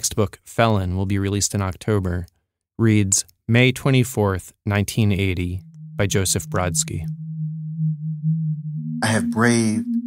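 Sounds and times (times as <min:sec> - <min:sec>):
low electronic tone: 0:05.2 - 0:10.0.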